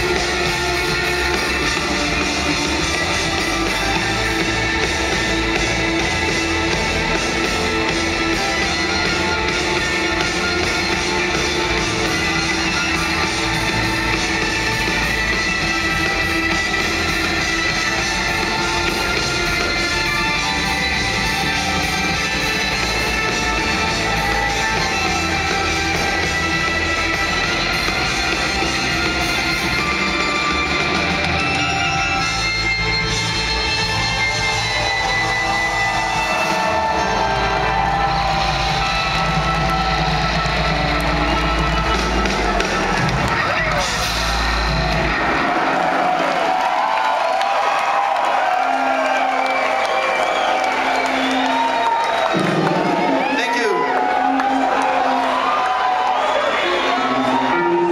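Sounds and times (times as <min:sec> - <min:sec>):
heavy bass: 0:00.0 - 0:46.3
crowd cheering and whistling: 0:00.0 - 0:57.9
drums: 0:00.0 - 0:57.9.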